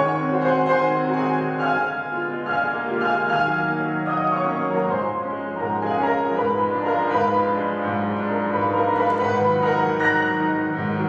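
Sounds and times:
grand piano chords: 0.0 - 11.0.

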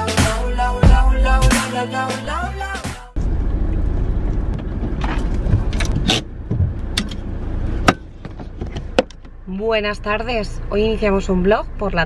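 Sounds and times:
low rumble inside a car: 3.2 - 12.0.

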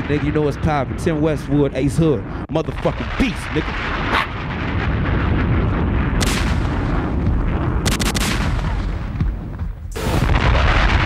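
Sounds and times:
booming explosions: 0.0 - 11.0
low rumble: 0.0 - 11.0
gunshot-like cracks: 3.6 - 9.1.

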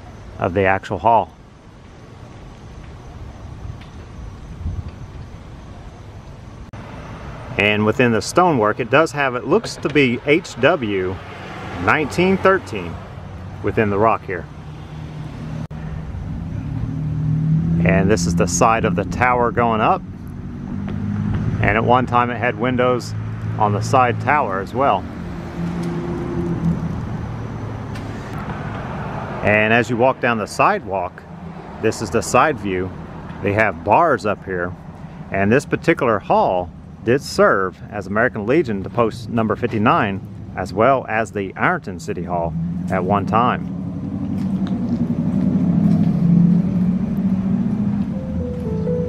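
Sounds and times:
road traffic rumble: 0.0 - 49.0
low engine hum: 11.2 - 29.9, 41.6 - 49.0.

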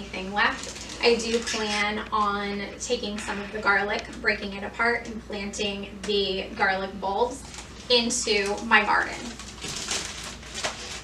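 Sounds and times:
plastic bag crinkling and rustling: 0.0 - 2.1, 7.2 - 11.0
sharp plastic crackles: 0.4 - 2.2, 7.4 - 11.0.

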